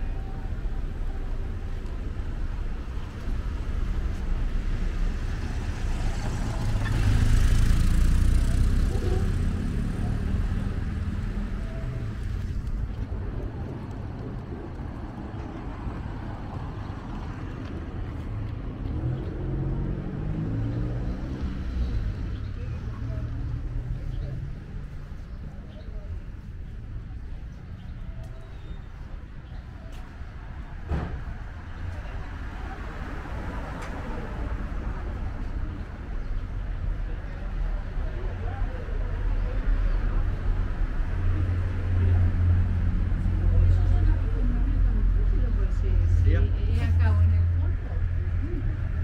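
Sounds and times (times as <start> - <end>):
low street hum: 0.0 - 49.0
people's voices: 0.0 - 49.0.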